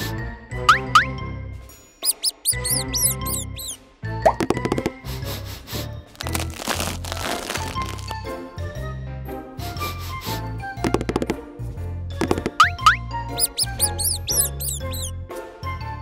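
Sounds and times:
playful children's music: 0:00.0 - 0:06.4, 0:07.9 - 0:16.0
high chirp sound effects: 0:02.0 - 0:03.8, 0:12.6 - 0:15.1.

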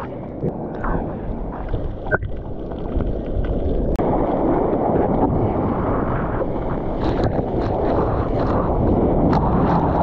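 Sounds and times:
muffled water rushing: 0:00.0 - 0:10.0.

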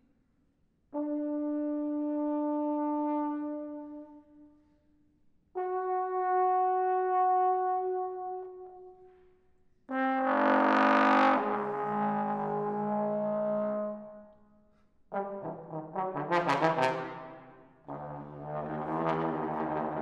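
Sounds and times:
trombone notes: 0:09.9 - 0:14.2, 0:15.1 - 0:20.0.

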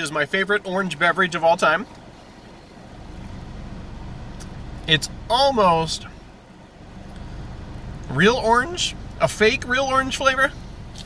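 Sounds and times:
car rumble from inside: 0:00.6 - 0:11.0.

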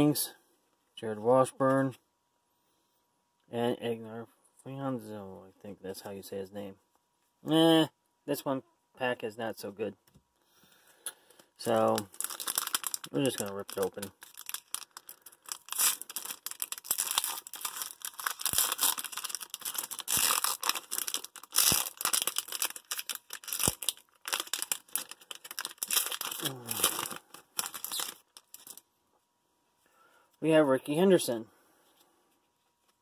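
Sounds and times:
foil wrapper ripping and crinkling: 0:11.6 - 0:28.8.

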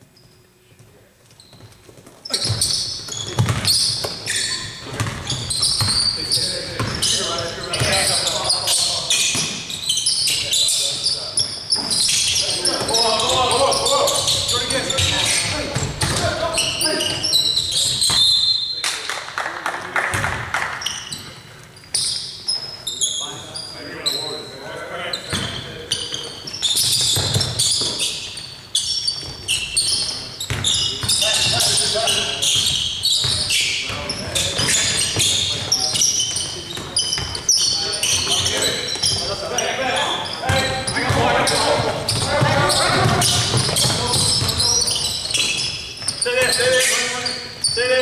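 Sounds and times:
sneakers squeaking: 0:00.0 - 0:19.2, 0:20.1 - 0:48.0
players calling out: 0:02.3 - 0:18.7, 0:29.0 - 0:48.0.

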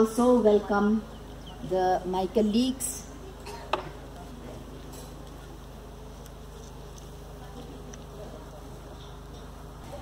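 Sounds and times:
electrical buzz and hum: 0:00.0 - 0:10.0.

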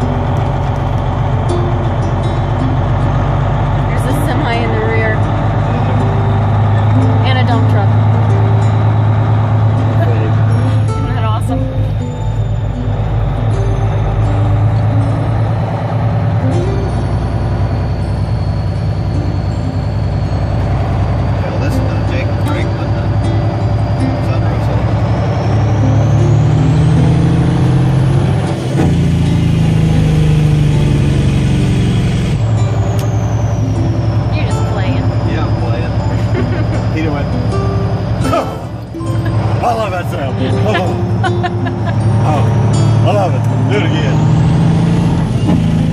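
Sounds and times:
truck diesel engine: 0:00.0 - 0:45.9.

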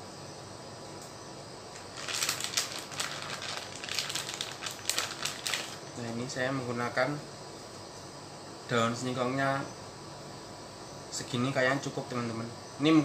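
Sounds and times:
plastic bag crinkling: 0:01.8 - 0:05.8.

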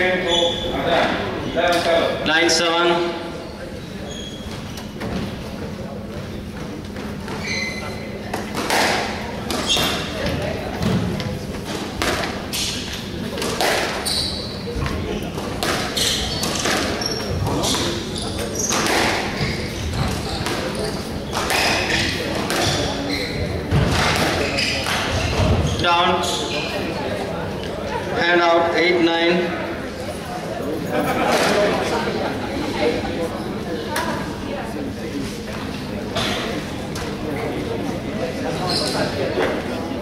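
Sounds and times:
shoes squeaking on wooden floor: 0:00.3 - 0:00.8, 0:03.4 - 0:05.4, 0:07.2 - 0:08.1, 0:14.0 - 0:26.9, 0:38.5 - 0:39.2
squash ball cracking off rackets: 0:08.3 - 0:10.2, 0:18.6 - 0:19.4, 0:20.0 - 0:22.9.

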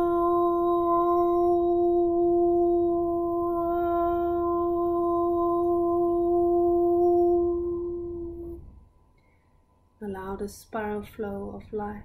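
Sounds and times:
woman singing sustained ooo tone: 0:00.0 - 0:12.0.

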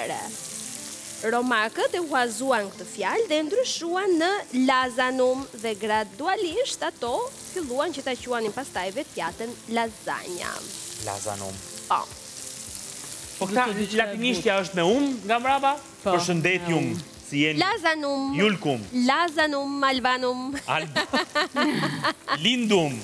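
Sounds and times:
vegetables sizzling in a pan: 0:00.0 - 0:23.0.

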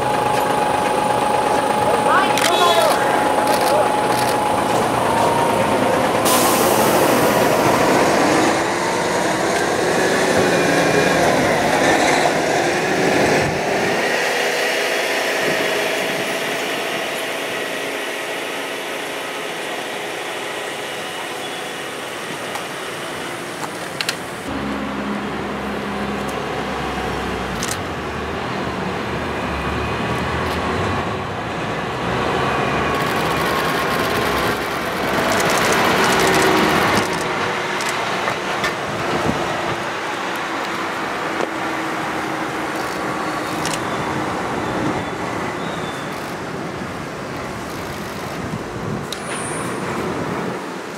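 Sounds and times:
heavy truck diesel engine: 0:00.0 - 0:50.9
road noise: 0:00.0 - 0:50.9.

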